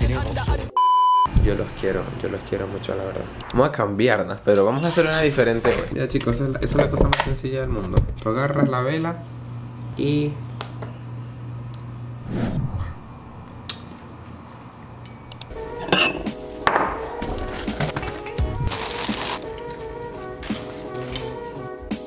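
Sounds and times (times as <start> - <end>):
ceramic bowl clinking: 15.1 - 17.4
background music: 15.1 - 22.0.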